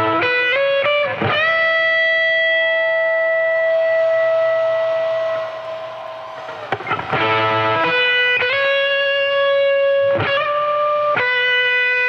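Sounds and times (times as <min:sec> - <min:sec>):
guitar picked attacks: 0:00.0 - 0:12.0.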